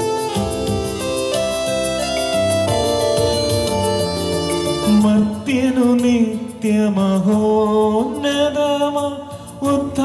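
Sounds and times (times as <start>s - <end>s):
breaths: 9.3s - 9.6s.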